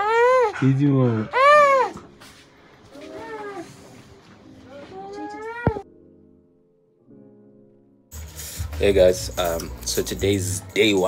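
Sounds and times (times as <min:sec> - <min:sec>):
baby crying: 0:00.0 - 0:02.0, 0:02.9 - 0:04.0, 0:04.6 - 0:05.8.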